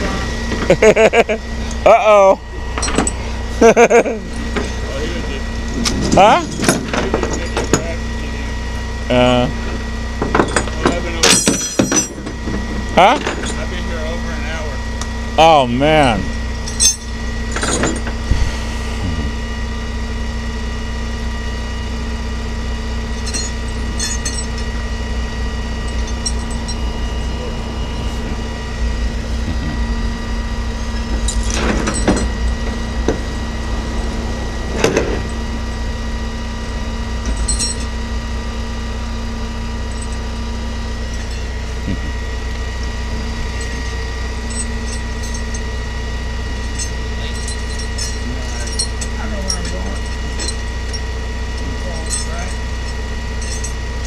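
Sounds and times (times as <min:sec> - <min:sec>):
vehicle engine idling: 0:00.0 - 0:54.0.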